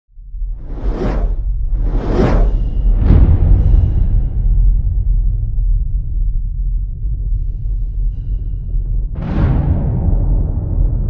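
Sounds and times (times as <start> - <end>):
deep rumble: 0.1 - 11.0
cinematic whooshes: 0.5 - 5.3.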